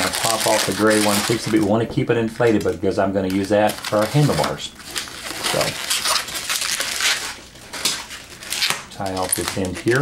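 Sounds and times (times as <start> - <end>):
balloons rubbing and squeaking: 0.0 - 1.8, 3.6 - 10.0.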